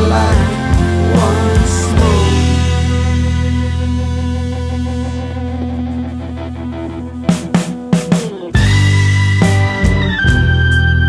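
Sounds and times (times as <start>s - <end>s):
guitar chord ringing: 0.4s - 11.0s.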